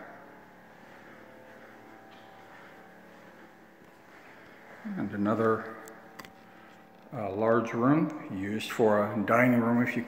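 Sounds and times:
low hum of held tones: 0:00.0 - 0:10.0.

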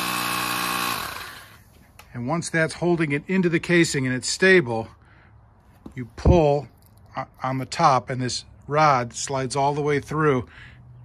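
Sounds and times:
steady buzz: 0:00.0 - 0:01.6.

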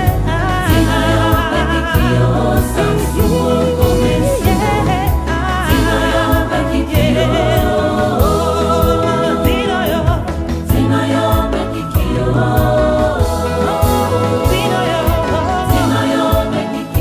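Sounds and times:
choir singing gospel: 0:00.0 - 0:17.0
low bass line: 0:00.0 - 0:17.0
steady beat: 0:03.2 - 0:07.3.

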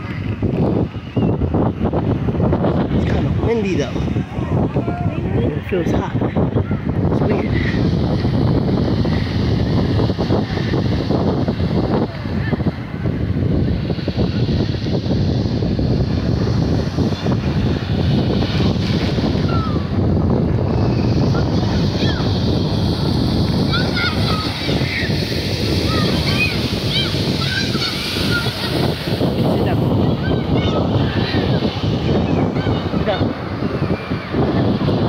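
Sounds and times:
ocean surf breaking: 0:00.0 - 0:35.0
wind rumbling on microphone: 0:00.0 - 0:35.0.

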